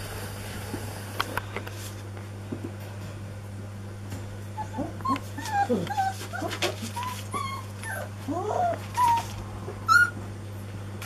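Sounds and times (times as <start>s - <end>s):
steady low hum: 0.0s - 11.0s
puppies yipping and whimpering: 4.6s - 10.2s.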